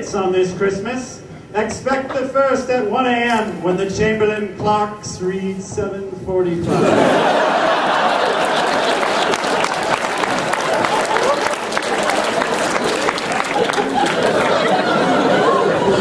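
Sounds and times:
audience laughing: 0:06.6 - 0:16.0
audience chattering: 0:06.8 - 0:16.0
audience clapping: 0:07.4 - 0:15.2.

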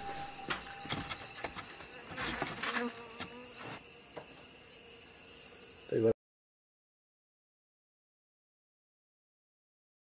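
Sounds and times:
insects trilling: 0:00.0 - 0:06.2.

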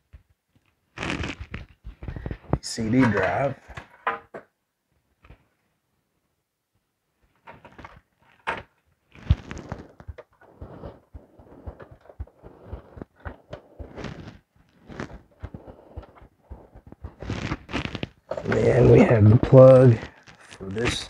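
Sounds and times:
cable bundle rustling: 0:07.4 - 0:21.0.

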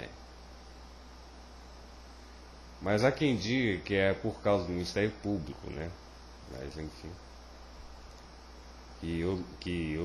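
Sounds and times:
man talking: 0:00.0 - 0:00.2, 0:02.8 - 0:07.2, 0:09.0 - 0:10.0
electrical hum: 0:00.0 - 0:10.0.

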